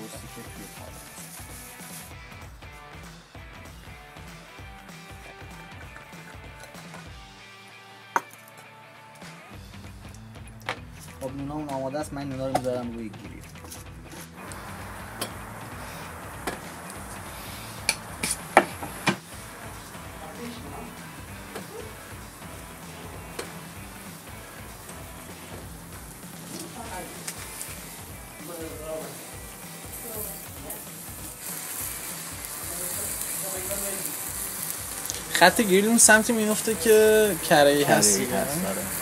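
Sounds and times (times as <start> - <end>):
bread sizzling on a grill: 0.0 - 2.6, 14.1 - 39.0.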